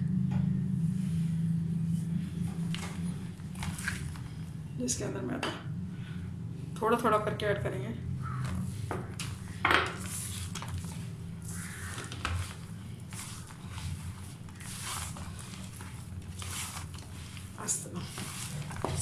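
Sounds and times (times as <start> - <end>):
steady low hum: 0.0 - 19.0
hand squishing dough in a bowl: 8.2 - 19.0.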